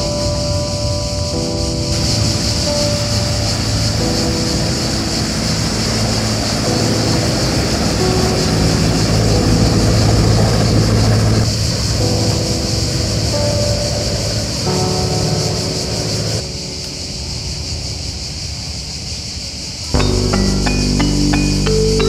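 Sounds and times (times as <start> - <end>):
cicadas singing: 0.0 - 22.0
boat engine running: 2.0 - 16.4.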